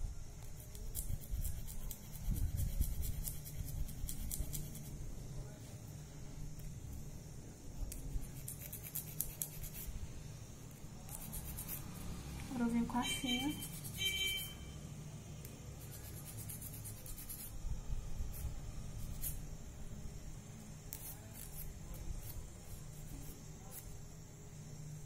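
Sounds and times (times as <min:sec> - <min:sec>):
nail file rasping on fingernail: 0:00.4 - 0:05.0, 0:07.9 - 0:10.0, 0:11.0 - 0:12.0, 0:13.2 - 0:14.5, 0:15.8 - 0:17.6, 0:18.2 - 0:19.4, 0:20.9 - 0:23.9.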